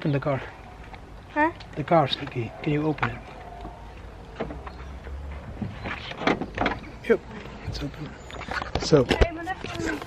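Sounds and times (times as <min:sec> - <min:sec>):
car doors knocking and rustling: 0:04.4 - 0:07.0.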